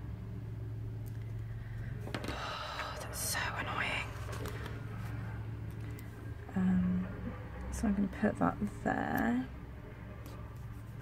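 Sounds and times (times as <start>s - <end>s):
low hum: 0.0s - 11.0s
paper rustling: 4.1s - 5.2s.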